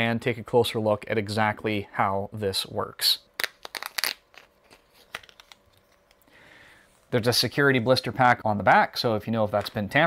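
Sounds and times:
plastic blister pack crackling: 3.4 - 6.2.

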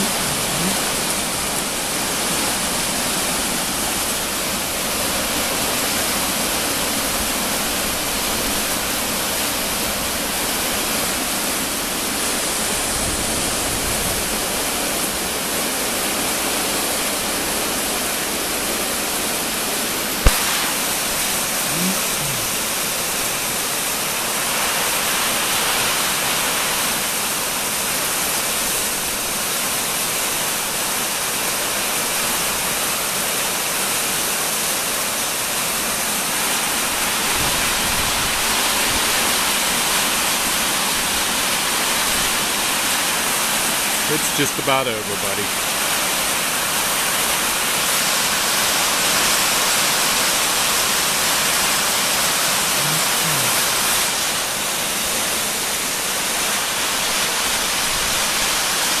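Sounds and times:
heavy rain and hail on metal roof: 53.7 - 59.0.

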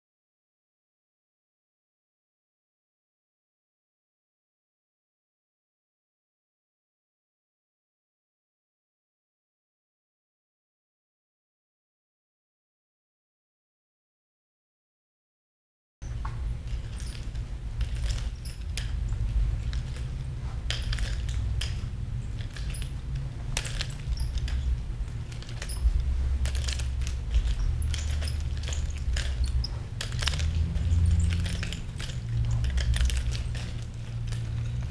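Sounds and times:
steady low rumble: 16.0 - 34.9
nunchaku sticks clacking: 16.3 - 34.9.

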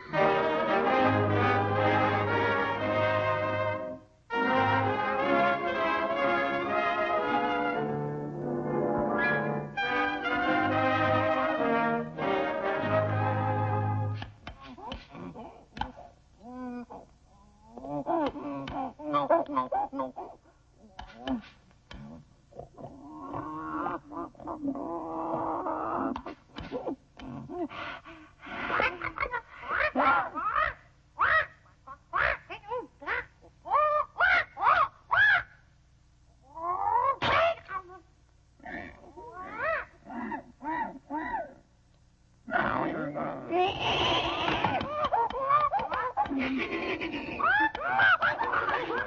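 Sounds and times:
cartoon animal cry: 9.1 - 9.6, 28.6 - 35.6, 36.4 - 41.6, 42.5 - 49.0.

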